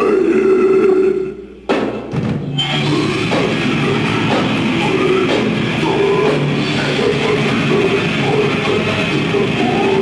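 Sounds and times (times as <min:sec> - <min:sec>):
guttural growling vocal: 0:00.0 - 0:01.3
metal band drums and guitars: 0:01.8 - 0:10.0.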